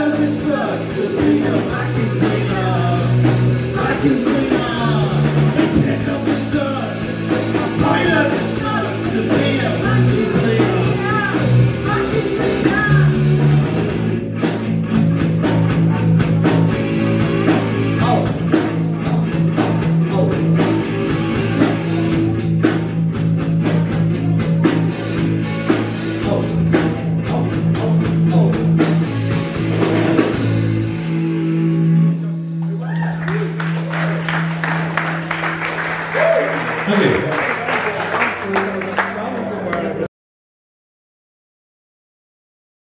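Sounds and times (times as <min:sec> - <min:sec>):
drum kit: 0:00.0 - 0:32.0
electric bass: 0:00.0 - 0:37.7
electric guitar: 0:00.0 - 0:38.1.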